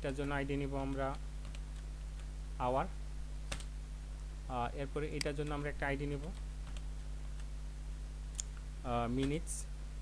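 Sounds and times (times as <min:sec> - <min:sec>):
low electrical hum: 0:00.0 - 0:10.0
computer keyboard typing clicks: 0:03.5 - 0:03.7.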